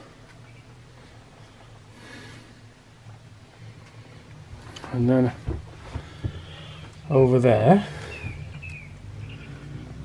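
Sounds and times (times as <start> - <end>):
faint bird chirps: 0.4 - 0.9, 7.9 - 9.8.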